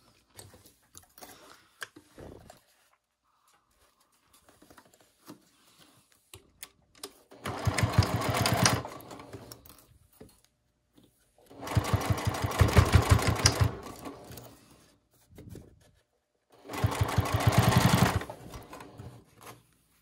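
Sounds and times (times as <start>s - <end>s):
sewing machine stitching: 7.3s - 9.6s, 11.5s - 14.5s, 16.6s - 19.2s.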